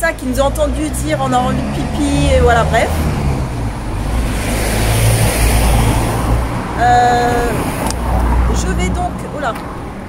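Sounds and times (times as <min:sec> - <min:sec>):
vehicles driving past: 0:00.0 - 0:10.0.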